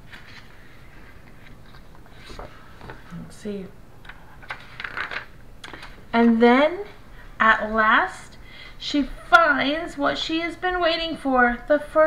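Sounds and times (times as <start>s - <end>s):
paper rustling: 0.0s - 3.0s.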